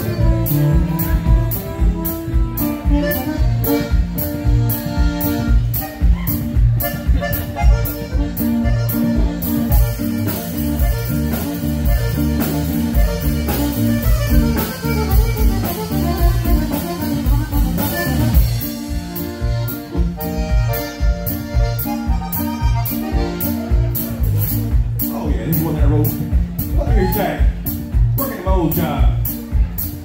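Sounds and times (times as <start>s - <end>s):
accordion: 0.0s - 30.0s
drum kit steady beat: 0.0s - 30.0s
electric guitar: 0.0s - 30.0s.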